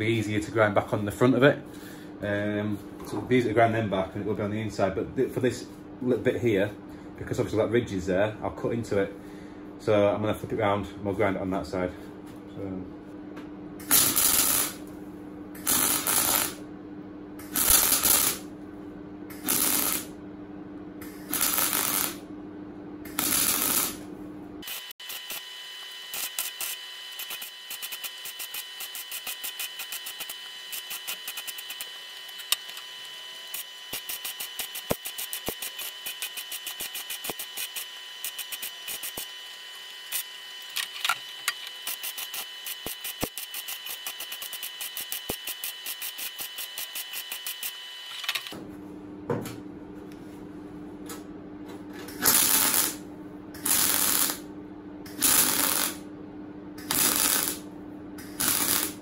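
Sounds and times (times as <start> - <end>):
welder arc crackling: 13.8 - 15.0, 15.6 - 16.6, 17.4 - 18.5, 19.3 - 20.2, 21.0 - 22.3, 23.1 - 48.6, 52.1 - 53.0, 53.6 - 54.5, 55.1 - 56.0, 56.8 - 59.0.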